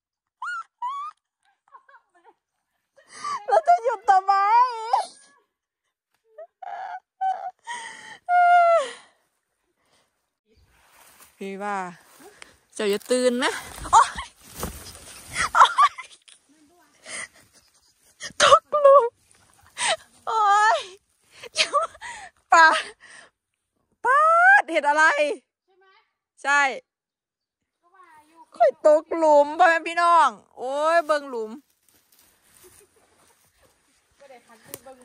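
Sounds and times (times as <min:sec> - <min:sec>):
high-pitched wordless cries: 0:15.4 - 0:19.2.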